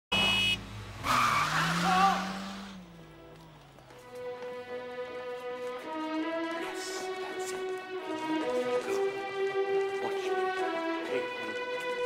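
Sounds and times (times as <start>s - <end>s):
car horn blaring: 0.1s - 0.7s
tires screeching: 0.1s - 4.3s.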